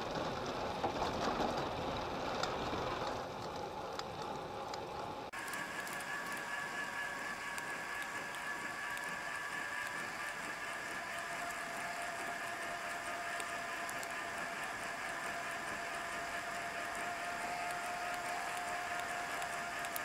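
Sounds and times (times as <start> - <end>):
bike tyres rolling on pavement: 0.0 - 20.0
faint steady whine: 2.7 - 20.0
light ticks: 7.4 - 20.0.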